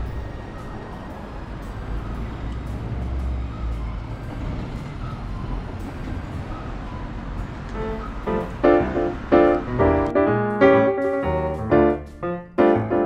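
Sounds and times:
road traffic rumble: 0.0 - 13.0.

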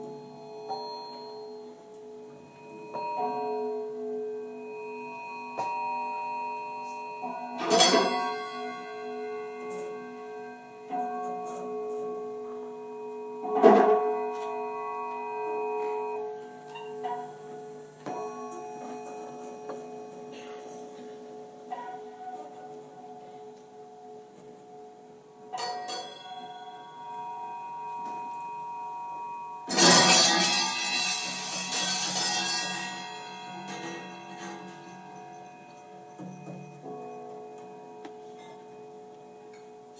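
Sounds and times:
ringing pitched tones: 0.0 - 22.2, 25.6 - 39.7
thin high whistling tones: 14.7 - 21.2.

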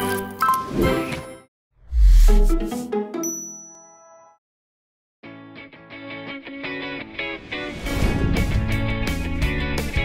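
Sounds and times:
high ding: 3.2 - 4.3.

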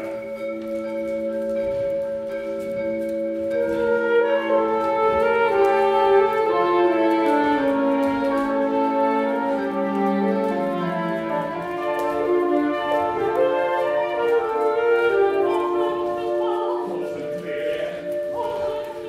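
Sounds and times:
chamber ensemble holding chords: 0.0 - 19.0.

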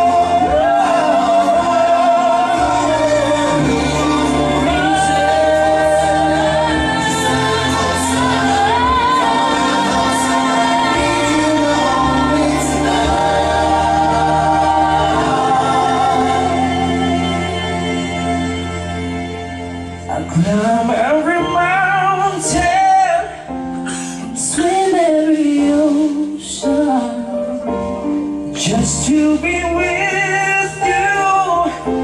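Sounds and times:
band accompaniment: 0.0 - 25.2.

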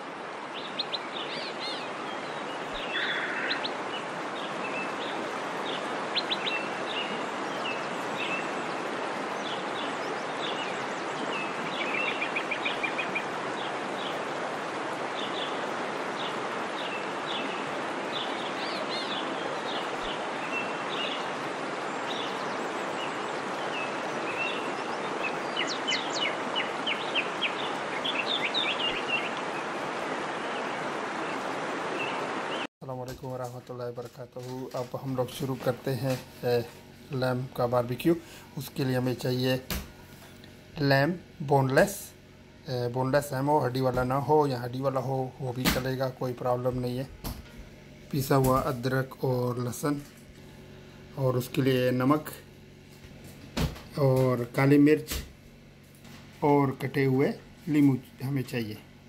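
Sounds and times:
small birds chirping: 0.0 - 32.7
steady background hiss: 0.0 - 59.0.

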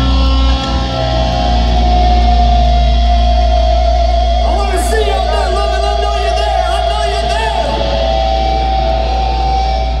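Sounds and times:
heavy low rumble: 0.0 - 10.0.

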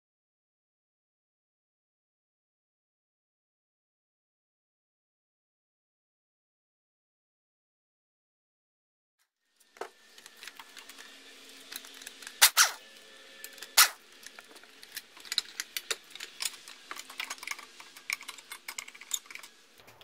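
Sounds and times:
metal and plastic parts clinking: 13.6 - 19.6.

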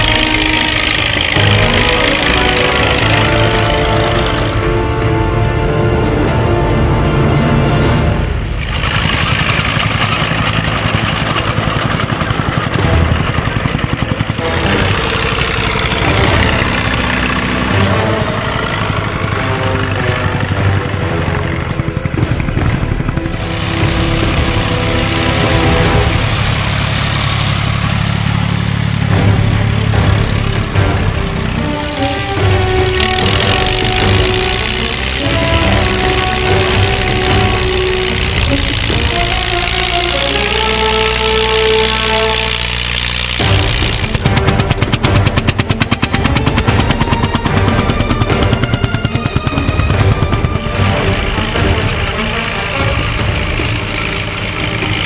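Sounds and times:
background music: 0.0 - 55.0
tractor engines running: 0.0 - 55.0.

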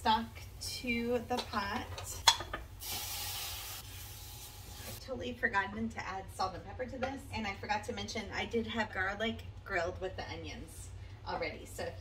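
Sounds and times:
liquid hissing in hot pan: 2.8 - 5.0.

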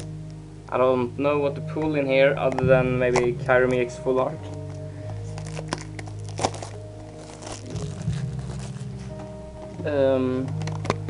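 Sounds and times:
background music with sustained tones: 0.0 - 11.0
wrapper crinkling and rustling: 4.5 - 9.3, 10.5 - 11.0.

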